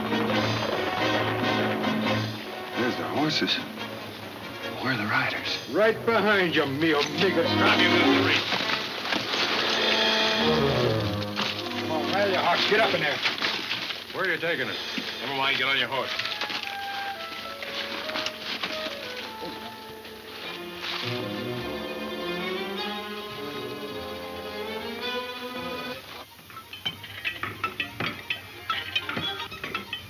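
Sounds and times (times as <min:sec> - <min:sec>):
orchestral strings music: 0:00.0 - 0:30.0.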